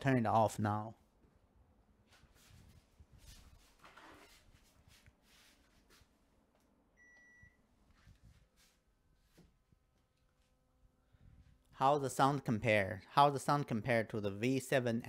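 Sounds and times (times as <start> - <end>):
air conditioner beep: 7.0 - 7.8.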